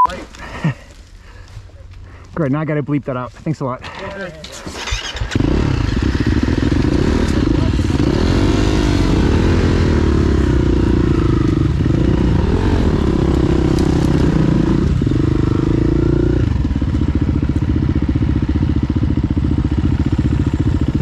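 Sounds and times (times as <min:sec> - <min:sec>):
dirt bike engine revving and idling: 0:04.6 - 0:21.0.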